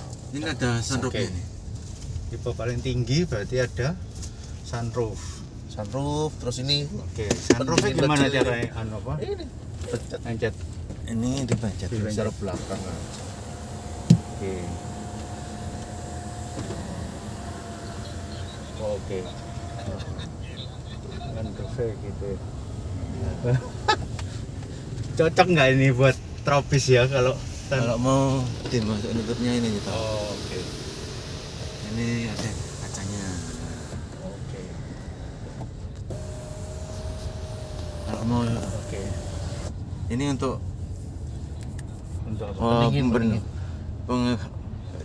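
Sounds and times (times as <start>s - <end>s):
low cabin rumble: 9.5s - 40.7s
sunroof motor whining: 12.4s - 24.8s, 27.7s - 39.8s
steady tone: 27.9s - 39.7s
sunroof motor click: 36.0s - 39.7s.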